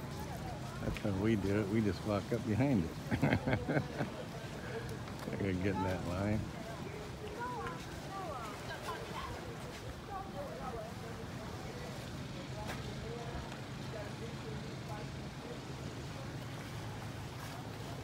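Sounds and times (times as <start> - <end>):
faint voices talking: 0.0 - 18.0
low engine hum: 0.0 - 18.0.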